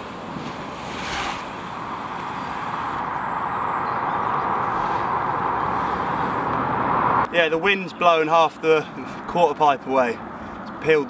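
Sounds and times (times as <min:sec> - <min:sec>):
wind blowing: 0:00.0 - 0:08.0.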